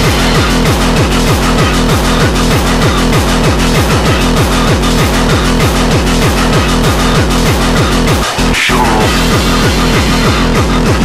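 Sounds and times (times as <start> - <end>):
drum and bass track: 0.0 - 11.0
noisy sweep: 8.3 - 9.4.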